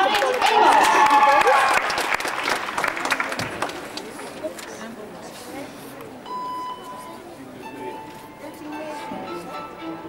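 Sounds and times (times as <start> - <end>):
audience applauding: 0.0 - 4.2.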